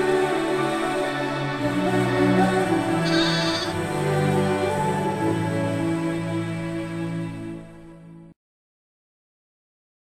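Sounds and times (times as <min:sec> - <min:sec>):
slow sustained background music: 0:00.0 - 0:08.4
sheep bleat: 0:03.0 - 0:03.8.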